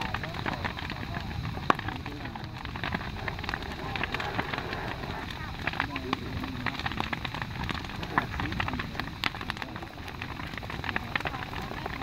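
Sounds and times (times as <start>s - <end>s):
bonfire crackling and popping: 0.0s - 12.0s
rushing flame: 0.0s - 12.0s.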